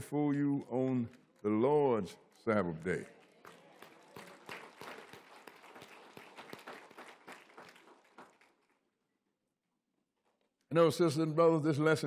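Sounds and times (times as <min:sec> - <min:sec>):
congregation clapping: 0:00.6 - 0:08.9.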